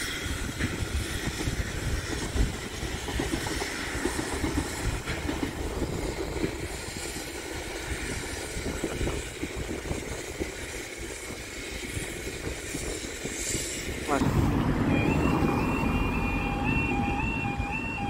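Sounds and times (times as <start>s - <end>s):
train wheels rumbling on rails: 0.0s - 18.0s.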